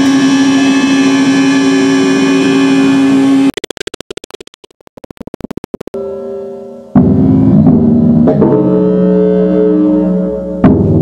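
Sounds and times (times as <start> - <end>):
sustained ringing low tones: 1.8 - 10.0.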